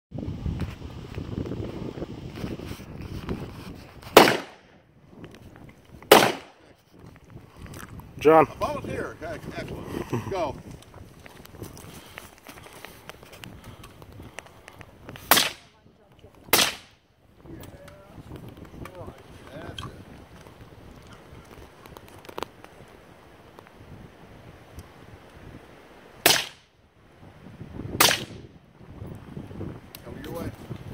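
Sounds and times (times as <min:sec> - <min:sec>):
gunshots: 0:04.2 - 0:04.7, 0:06.1 - 0:06.6, 0:15.3 - 0:15.7, 0:16.5 - 0:17.0, 0:26.2 - 0:26.7, 0:28.0 - 0:28.4
rifle shots with echo: 0:04.2 - 0:04.7, 0:06.1 - 0:06.6, 0:15.3 - 0:15.7, 0:16.5 - 0:17.0, 0:26.2 - 0:26.7, 0:28.0 - 0:28.4.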